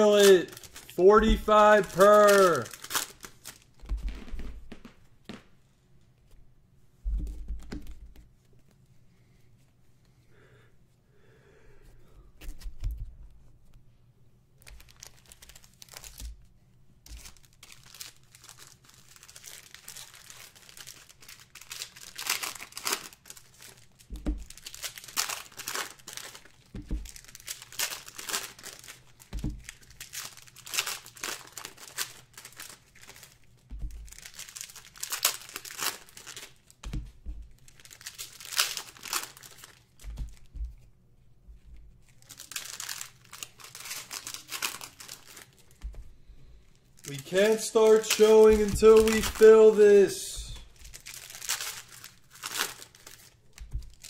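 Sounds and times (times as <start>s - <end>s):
man talking: 0.0s - 2.7s, 47.1s - 50.7s
plastic wrappers tearing and crinkling: 0.0s - 4.8s, 14.6s - 36.8s, 37.5s - 40.5s, 42.0s - 45.9s, 47.0s - 54.0s.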